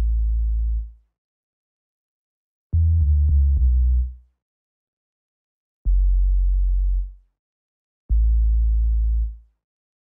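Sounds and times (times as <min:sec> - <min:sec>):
deep synthesized bass notes: 0:02.8 - 0:04.2, 0:05.9 - 0:07.1, 0:08.1 - 0:09.4.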